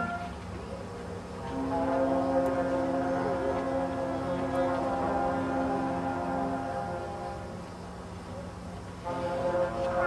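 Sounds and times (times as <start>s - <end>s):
brass band holding a chord: 1.4s - 7.6s, 9.0s - 10.0s.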